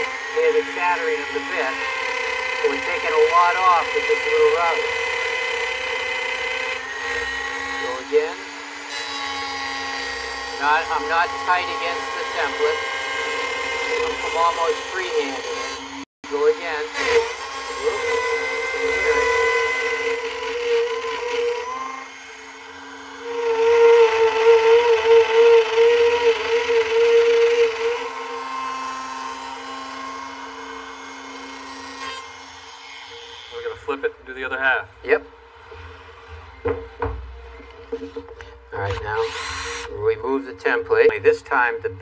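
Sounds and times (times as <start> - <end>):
router whining: 0.0 - 42.0.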